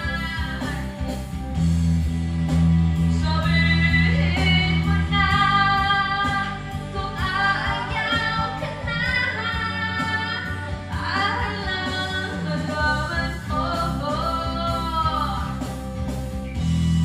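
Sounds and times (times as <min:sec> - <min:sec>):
woman singing into microphone: 0:00.0 - 0:01.0, 0:03.1 - 0:15.8
recorded backing track: 0:00.0 - 0:17.0.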